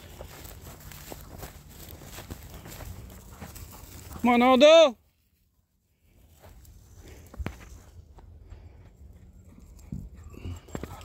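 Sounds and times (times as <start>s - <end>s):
footsteps through grass: 0.0s - 8.2s.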